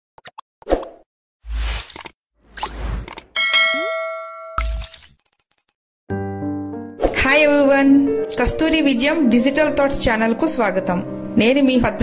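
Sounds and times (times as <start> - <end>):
bell-like chime: 3.4 - 4.8.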